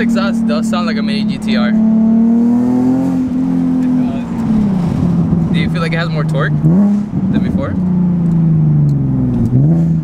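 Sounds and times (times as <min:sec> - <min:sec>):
car engine drone from inside: 0:00.0 - 0:10.0.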